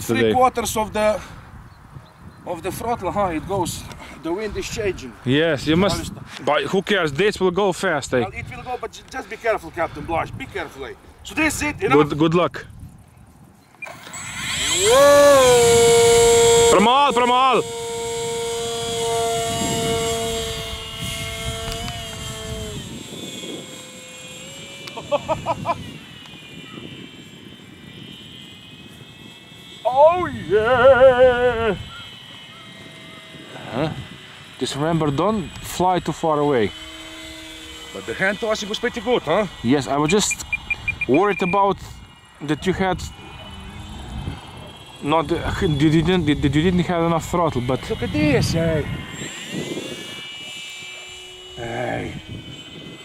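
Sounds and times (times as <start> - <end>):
model plane motor whining: 2.4 - 53.0.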